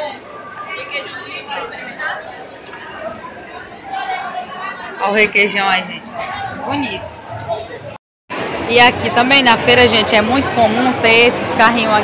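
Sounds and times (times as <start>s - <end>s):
crowd of voices talking: 0.0s - 12.0s.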